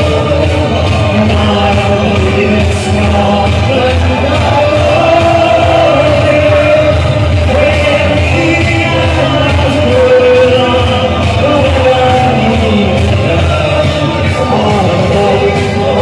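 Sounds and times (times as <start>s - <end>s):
pop music with sung vocal: 0.0s - 16.0s.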